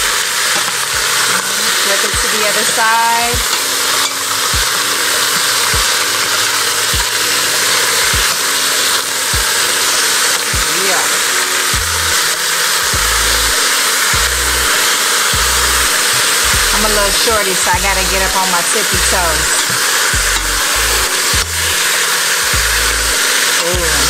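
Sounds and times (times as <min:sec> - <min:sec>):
chicken sizzling in a pot: 0:00.0 - 0:24.0
background music with a beat: 0:03.2 - 0:24.0.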